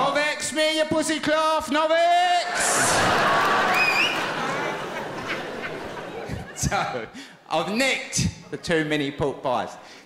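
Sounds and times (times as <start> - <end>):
audience laughing: 2.4 - 7.2.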